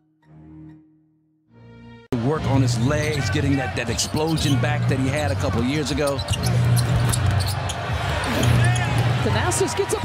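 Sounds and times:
crowd background: 2.1s - 10.0s.

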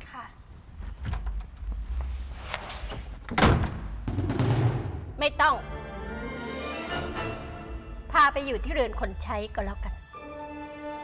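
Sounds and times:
wooden door slamming: 3.3s - 4.9s.

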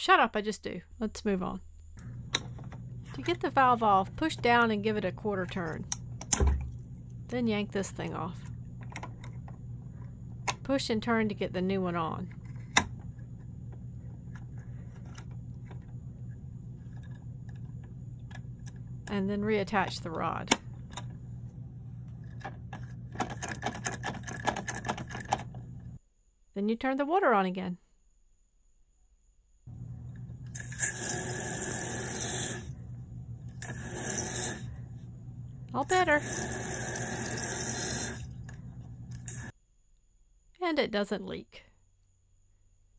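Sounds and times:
low steady hum: 0.0s - 27.4s, 29.5s - 42.9s
water hissing into toilet tank: 30.5s - 32.8s, 33.6s - 34.7s, 36.0s - 38.4s, 39.2s - 39.5s.

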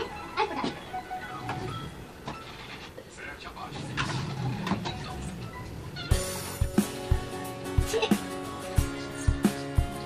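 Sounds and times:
low background noise: 0.0s - 8.1s.

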